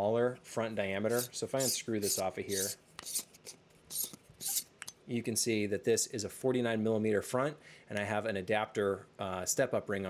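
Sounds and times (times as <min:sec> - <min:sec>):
metal lens threads scraping: 0:01.1 - 0:04.7.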